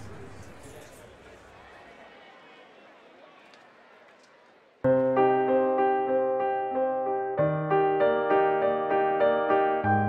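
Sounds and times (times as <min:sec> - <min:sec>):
faint background noise: 0:00.0 - 0:05.2.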